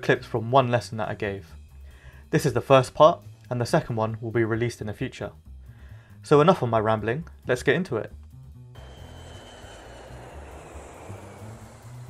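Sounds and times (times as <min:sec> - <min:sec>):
background music with low bass: 0:00.0 - 0:12.0
rushing noise effect: 0:08.8 - 0:12.0.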